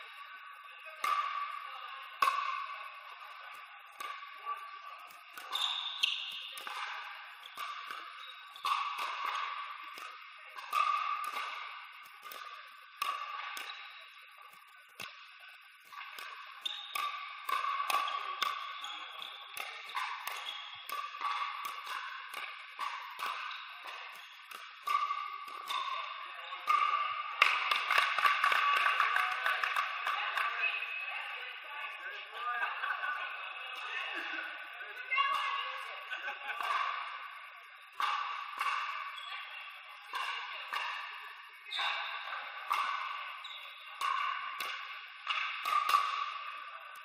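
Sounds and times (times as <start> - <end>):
paddles hitting ball: 5.3 - 15.2, 15.8 - 30.5, 42.7 - 46.6.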